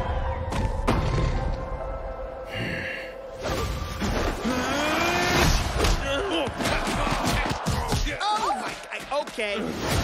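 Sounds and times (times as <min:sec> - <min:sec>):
arena crowd noise: 0:06.0 - 0:09.4.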